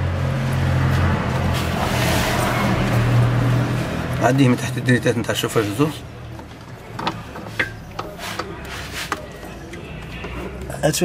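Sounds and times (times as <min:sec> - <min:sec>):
rubber hose handling clicks and knocks: 0:06.4 - 0:09.3.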